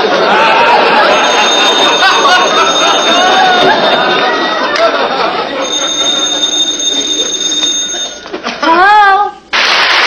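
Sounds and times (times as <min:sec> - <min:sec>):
telephone bell ringing: 0:00.4 - 0:08.5.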